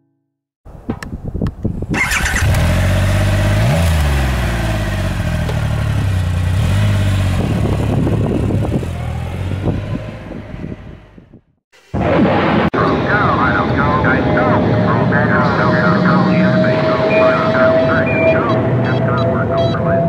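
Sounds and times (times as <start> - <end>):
motorcycle engine starting and idling: 1.8 - 11.1
engine revving: 1.9 - 11.4, 13.6 - 20.0.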